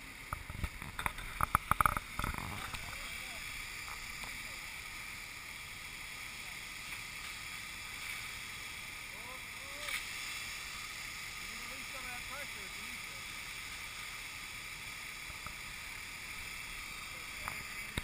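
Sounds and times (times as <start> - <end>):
fire hose spraying water: 0.0 - 18.0.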